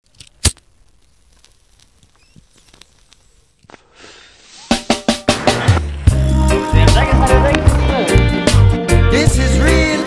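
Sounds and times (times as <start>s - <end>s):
faint clicks and crackle: 0.0s - 3.9s
low hiss: 0.2s - 7.6s.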